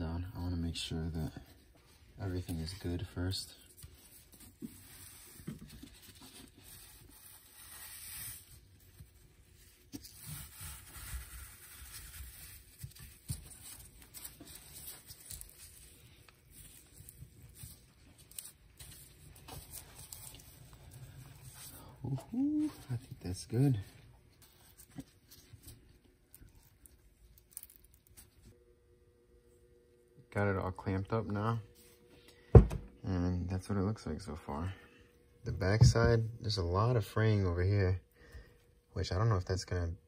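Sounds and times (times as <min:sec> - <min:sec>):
rustling and scratching of fabric wrap: 0:01.6 - 0:28.6.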